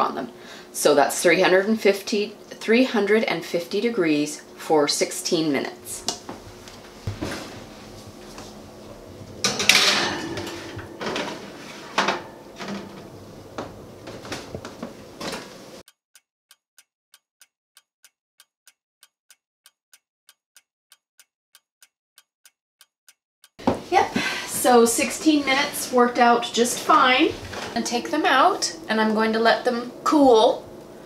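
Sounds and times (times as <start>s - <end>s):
oven door closing: 7.1s - 15.8s, 23.6s - 29.4s
baking sheet clattering: 9.4s - 15.6s.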